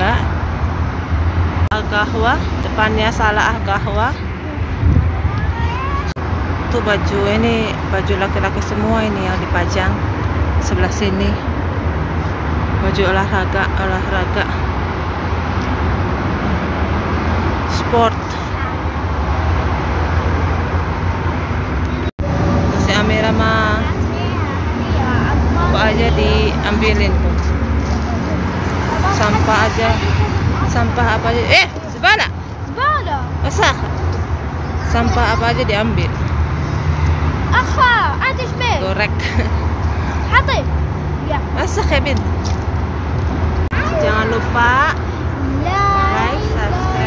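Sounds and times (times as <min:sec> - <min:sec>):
young child vocalizing: 0:04.4 - 0:06.2.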